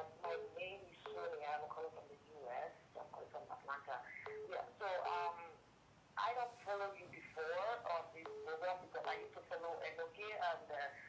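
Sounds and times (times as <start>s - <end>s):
speech over telephone line: 0.0s - 5.6s, 6.2s - 11.0s.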